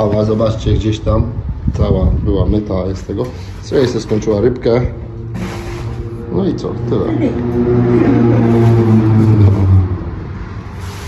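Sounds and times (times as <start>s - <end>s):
vehicle engine running: 3.9s - 11.0s.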